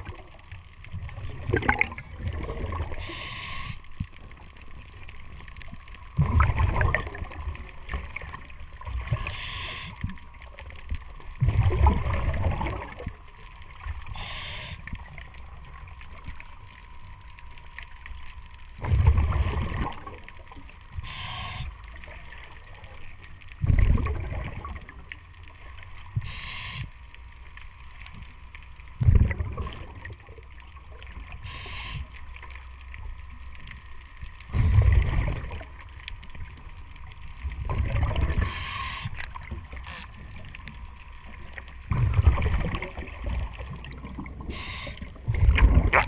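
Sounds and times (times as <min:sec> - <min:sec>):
exhaled bubbles rumbling: 0:00.0 - 0:26.8, 0:27.4 - 0:46.0
regulator inhalation hiss: 0:02.9 - 0:03.9, 0:09.2 - 0:10.0, 0:14.1 - 0:14.9, 0:21.0 - 0:21.8, 0:26.2 - 0:27.0, 0:31.4 - 0:32.1, 0:38.4 - 0:39.2, 0:44.5 - 0:45.1.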